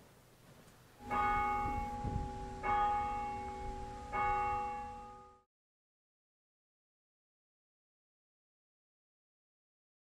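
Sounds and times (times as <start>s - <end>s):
church bell tolling: 1.0s - 5.5s.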